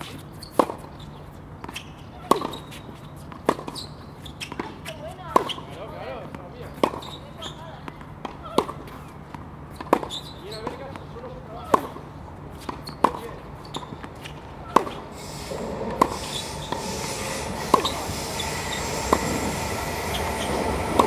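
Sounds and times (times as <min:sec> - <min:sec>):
racket hitting tennis ball: 0:01.6 - 0:03.8, 0:04.4 - 0:05.7, 0:06.8 - 0:07.2, 0:07.9 - 0:11.0, 0:11.6 - 0:15.2, 0:15.8 - 0:17.0, 0:17.6 - 0:18.1
steady rushing noise: 0:14.8 - 0:21.0.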